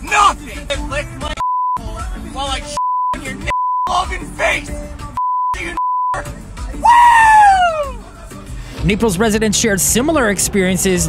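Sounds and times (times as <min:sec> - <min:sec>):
man shouting: 0:00.0 - 0:00.6, 0:03.9 - 0:04.8, 0:06.8 - 0:08.0
high-pitched censor bleeps: 0:02.8 - 0:03.9, 0:05.2 - 0:06.8.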